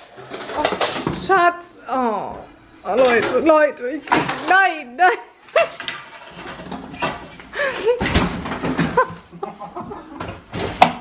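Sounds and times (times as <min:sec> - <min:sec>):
people laughing: 0:07.6 - 0:10.4.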